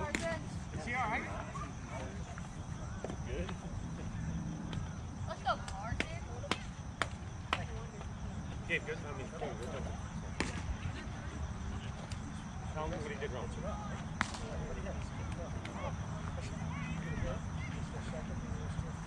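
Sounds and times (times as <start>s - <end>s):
distant voices calling out: 0.0s - 19.0s
sharp smacks: 14.2s - 14.5s.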